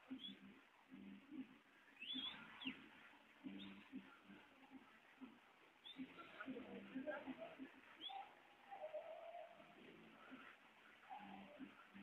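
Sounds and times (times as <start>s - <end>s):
bird chirps rising: 2.0s - 2.8s.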